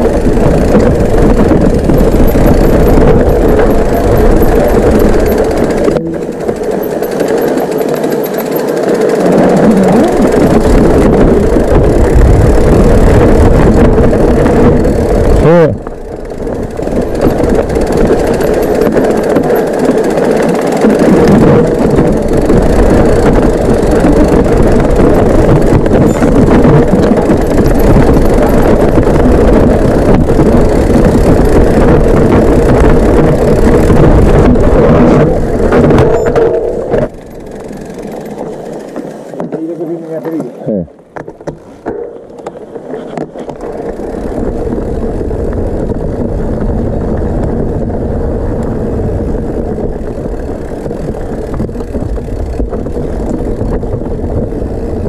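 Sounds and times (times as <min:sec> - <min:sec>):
bike tyres rumbling and rattling: 0:00.0 - 0:55.0.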